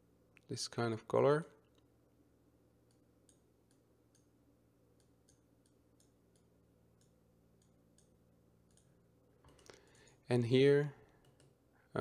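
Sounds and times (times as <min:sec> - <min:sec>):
faint room hum: 0:00.0 - 0:12.0
computer mouse clicks: 0:08.7 - 0:10.2, 0:11.1 - 0:11.6.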